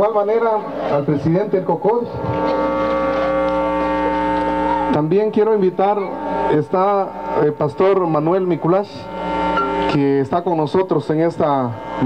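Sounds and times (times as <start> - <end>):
low hum: 0.6 - 12.0
microphone feedback tone: 0.8 - 12.0.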